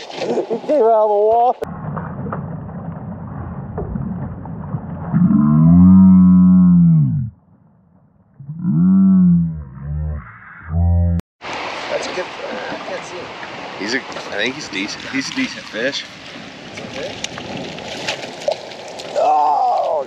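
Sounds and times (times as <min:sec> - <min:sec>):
slowed river and wind rumble: 0:00.0 - 0:20.0
slowed shouts as deep groans: 0:05.2 - 0:07.4, 0:08.4 - 0:11.2.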